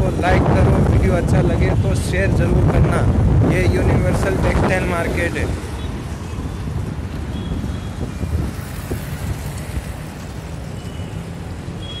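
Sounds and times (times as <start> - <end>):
road and traffic rumble: 0.0 - 12.0.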